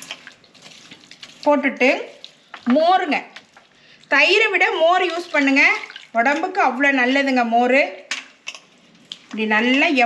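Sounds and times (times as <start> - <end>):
hand squishing porridge: 0.0 - 6.6, 8.4 - 10.0
woman speaking: 1.4 - 3.4, 4.1 - 8.1, 9.3 - 10.0.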